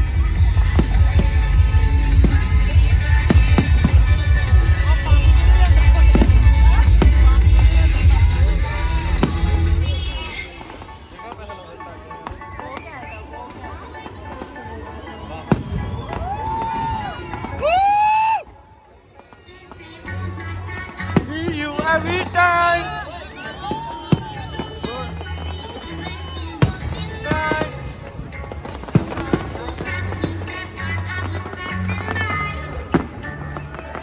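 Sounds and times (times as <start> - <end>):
fireworks exploding bangs: 0.0 - 18.2, 19.2 - 22.7, 23.4 - 34.0
background music: 0.0 - 34.0
crowd chatter: 0.0 - 34.0
voices: 0.0 - 34.0.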